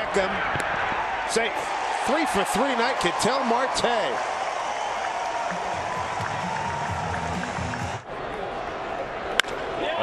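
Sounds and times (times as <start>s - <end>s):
ballpark crowd noise: 0.0s - 10.0s.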